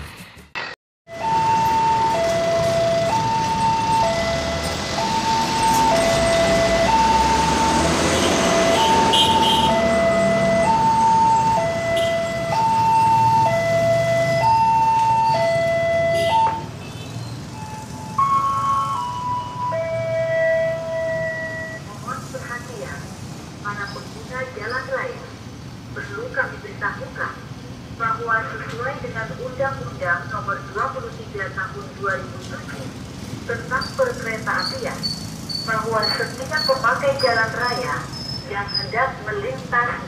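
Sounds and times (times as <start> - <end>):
road traffic passing: 0.0 - 40.0
level crossing alarm two-tone: 1.1 - 16.7, 17.6 - 21.9
long alarm tones: 1.1 - 16.8, 17.5 - 21.9.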